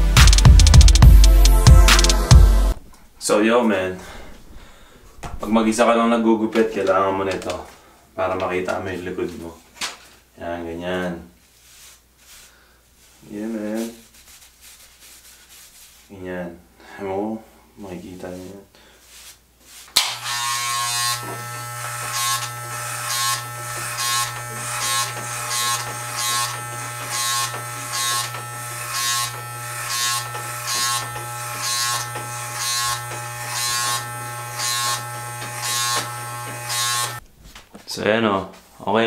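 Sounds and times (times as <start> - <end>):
electric hair clippers buzzing: 20.0 - 37.2.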